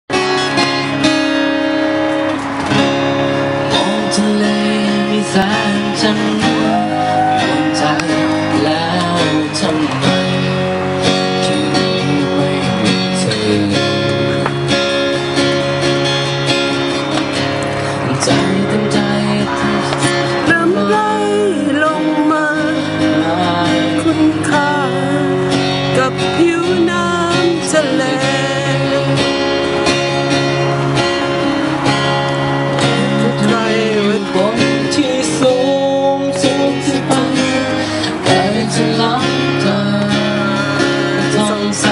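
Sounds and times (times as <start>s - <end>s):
strummed acoustic guitar: 0.1s - 41.9s
man singing: 3.6s - 14.8s, 17.9s - 29.9s, 32.7s - 41.9s.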